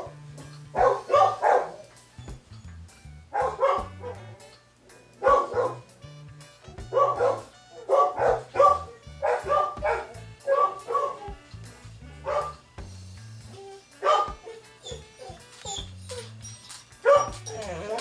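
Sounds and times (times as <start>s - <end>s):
background music with bass line: 0.0s - 18.0s
dog barking: 0.8s - 2.0s, 3.3s - 4.4s, 5.0s - 5.9s, 6.8s - 11.4s, 12.2s - 12.6s, 14.0s - 15.4s, 17.0s - 18.0s.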